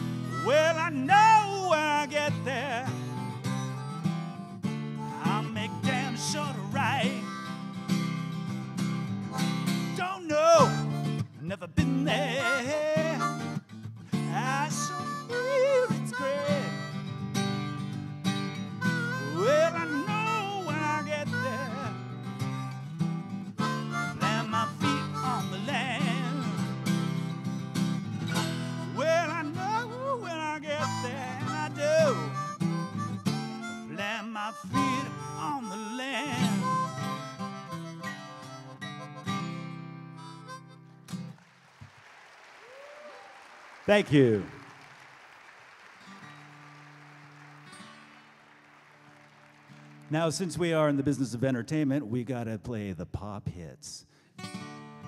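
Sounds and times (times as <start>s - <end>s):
acoustic guitar strumming: 0.0s - 41.4s, 46.0s - 51.4s, 54.4s - 55.0s
harmonica solo: 0.0s - 41.4s.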